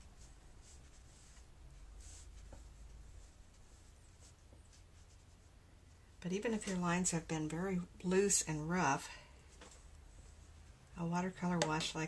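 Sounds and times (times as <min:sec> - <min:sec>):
brush swishing on paper: 0:00.0 - 0:06.8, 0:08.2 - 0:10.9
low room hum: 0:00.0 - 0:12.0.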